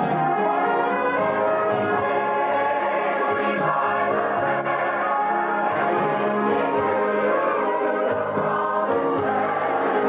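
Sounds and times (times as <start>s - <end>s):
choir singing gospel harmony: 0.0s - 10.0s.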